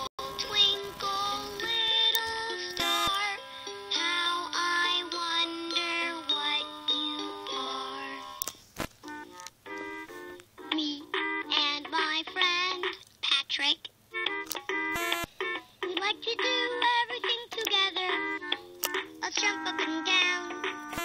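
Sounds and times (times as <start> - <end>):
toy playing electronic tune: 9.1 - 11.5, 14.2 - 15.7.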